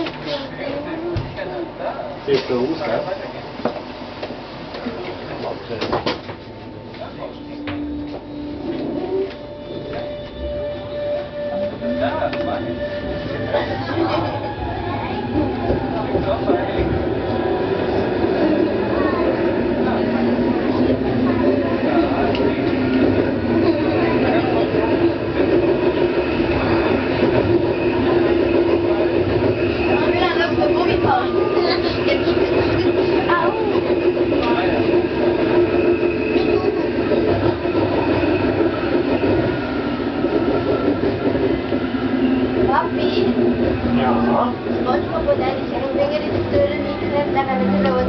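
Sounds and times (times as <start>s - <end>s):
railcar wheels on rail and motor: 0.0s - 48.0s
indistinct voices: 7.2s - 48.0s.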